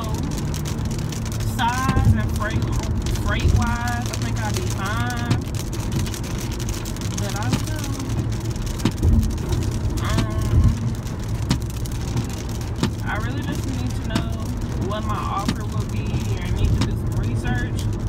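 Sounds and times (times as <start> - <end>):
person speaking: 0.0 - 0.4, 1.4 - 5.5, 7.2 - 8.3, 10.0 - 10.9, 13.0 - 17.9
road and engine rumble in car: 0.0 - 18.0.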